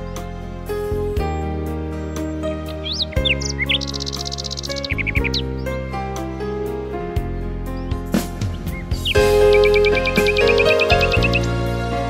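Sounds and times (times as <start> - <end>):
nightingale singing: 0.0 - 6.7, 7.3 - 12.0
soft instrumental music: 0.0 - 12.0.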